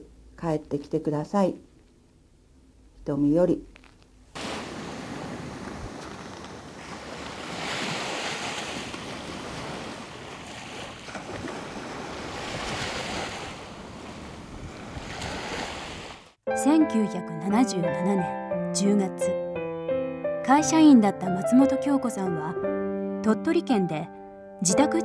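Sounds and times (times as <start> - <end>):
wind: 0.0 - 16.4
surf washing onto beach: 4.4 - 16.3.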